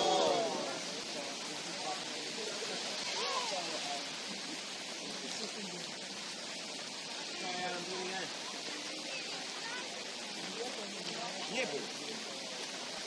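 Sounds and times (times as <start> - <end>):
rain falling: 0.0 - 13.0.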